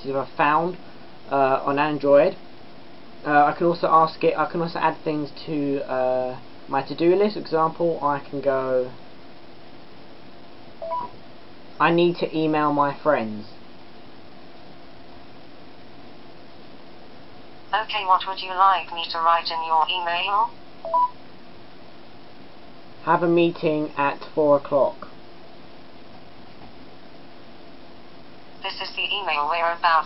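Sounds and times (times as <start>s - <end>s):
faint room hiss: 0.0s - 30.0s
two-note rising phone beep: 10.8s - 11.1s, 20.8s - 21.1s.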